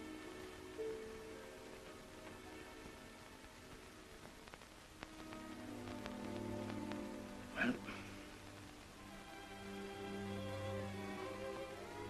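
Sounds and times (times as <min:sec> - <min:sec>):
old soundtrack clicks and crackle: 0:00.0 - 0:12.0
soft sustained string notes: 0:00.0 - 0:12.0.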